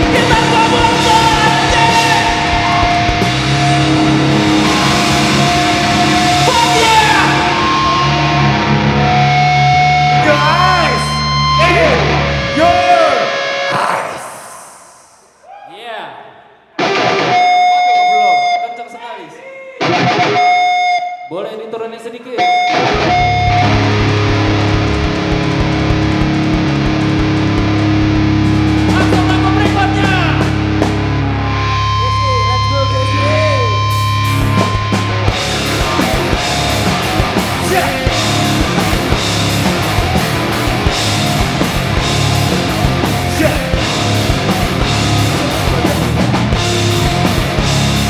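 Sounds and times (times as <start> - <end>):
electric guitar chords ringing: 0.0 - 14.4, 16.8 - 18.8, 19.8 - 21.3, 22.4 - 48.0
heavy rock band playing: 0.0 - 15.1, 16.8 - 18.6, 19.8 - 21.0, 22.4 - 48.0.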